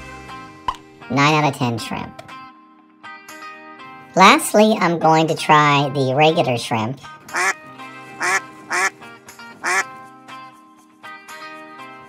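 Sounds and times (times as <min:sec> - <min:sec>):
background music: 0:00.0 - 0:12.0
quacking calls: 0:07.3 - 0:07.6, 0:08.2 - 0:08.9, 0:09.6 - 0:09.9.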